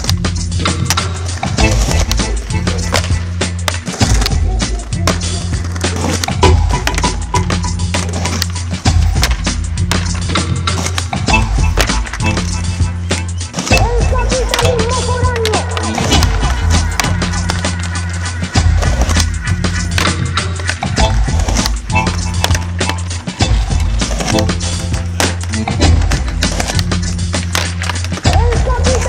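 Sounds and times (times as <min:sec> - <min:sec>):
music with heavy bass line: 0:00.0 - 0:29.0
person singing or rapping: 0:01.7 - 0:06.2, 0:13.6 - 0:16.9, 0:28.2 - 0:29.0.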